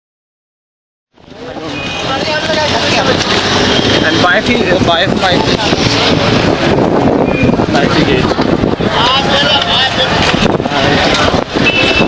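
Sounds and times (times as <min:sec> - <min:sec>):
busy street traffic: 0:01.1 - 0:12.0.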